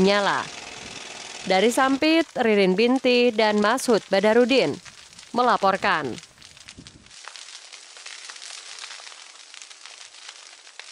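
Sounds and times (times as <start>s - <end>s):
burning brush crackling: 0.0s - 10.9s.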